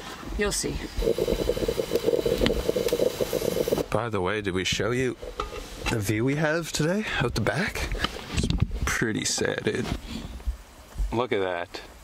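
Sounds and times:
small electric motor buzzing: 1.0 - 3.8.

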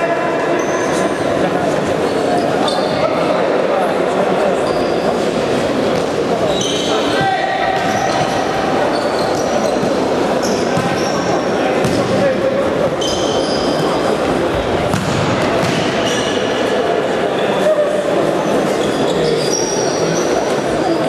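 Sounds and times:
shoes squeaking on court: 2.1 - 3.0, 6.4 - 12.1, 12.9 - 16.4, 18.5 - 21.0.

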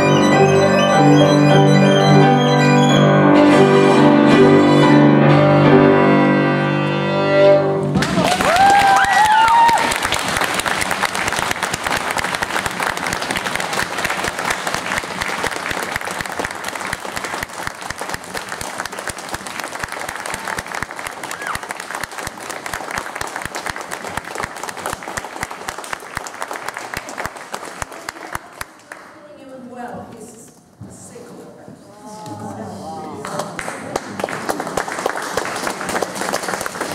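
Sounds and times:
audience cheering: 8.0 - 17.0, 19.7 - 23.3
audience applauding: 8.0 - 29.2, 33.2 - 36.9.

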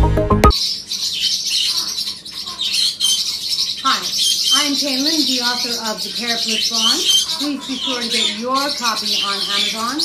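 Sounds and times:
intro music with a beat: 0.0 - 0.6
parrotlet chirping: 0.4 - 10.0.

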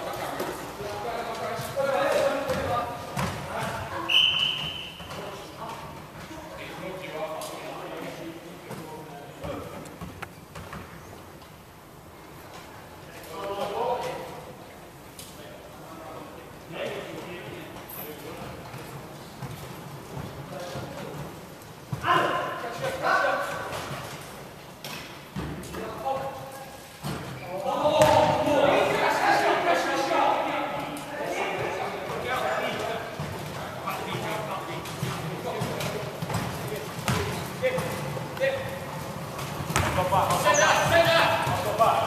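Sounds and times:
players' voices in hall: 0.0 - 42.0
basketball bouncing on wooden floor: 28.0 - 28.4, 34.9 - 38.2, 39.3 - 41.8.

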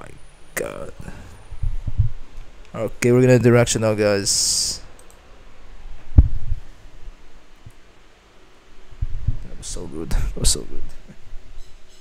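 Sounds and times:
quiet room hum: 0.0 - 12.0
microphone handling thumps: 6.1 - 6.6.

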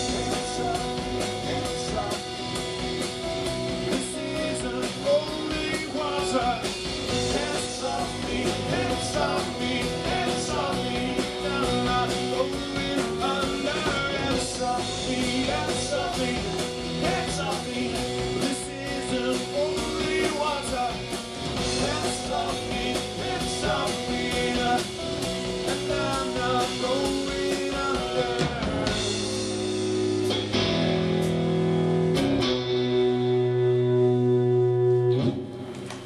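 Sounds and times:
bass guitar: 0.0 - 36.0
drums: 0.0 - 36.0
electric guitar: 0.0 - 36.0
electric keyboard: 0.0 - 36.0.

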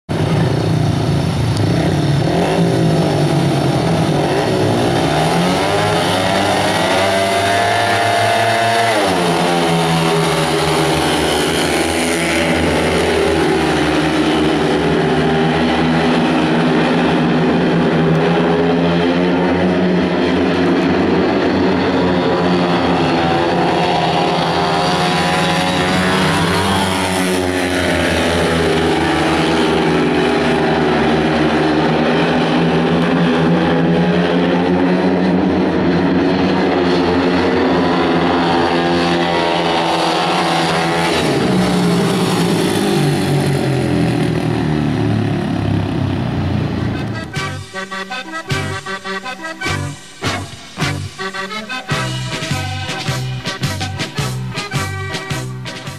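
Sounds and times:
motorcycle engines racing: 0.1 - 55.9.

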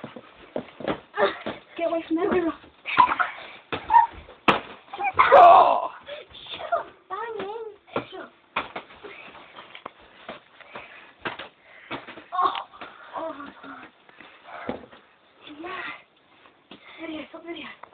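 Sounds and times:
boys shouting and grunting: 2.3 - 4.3, 4.9 - 7.4, 12.3 - 14.0
thumps and slaps of blows: 3.7 - 5.5, 7.3 - 9.0, 10.3 - 13.0.

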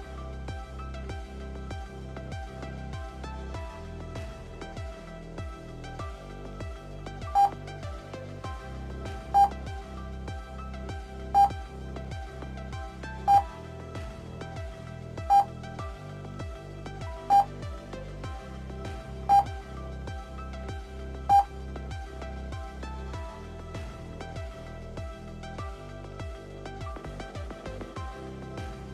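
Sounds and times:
electronic music with steady beat: 0.0 - 28.9.

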